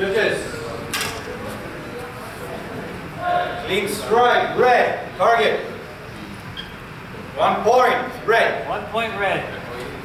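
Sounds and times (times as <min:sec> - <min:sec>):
large hall room noise: 0:00.0 - 0:10.0.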